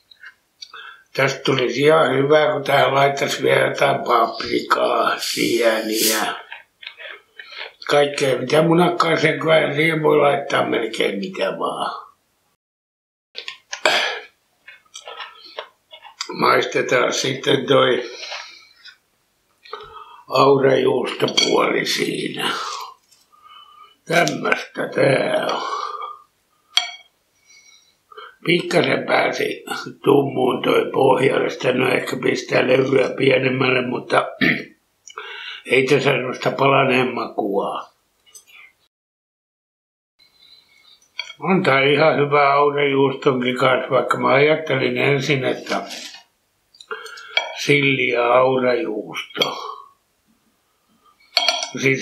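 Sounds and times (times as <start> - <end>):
cutlery clinking on ceramic plate: 21.2 - 21.6, 26.8 - 27.1, 41.2 - 41.4, 47.0 - 47.6, 51.3 - 51.8
cutlery scraping plate: 21.2 - 21.6, 41.2 - 41.4, 47.0 - 47.6, 51.3 - 51.8.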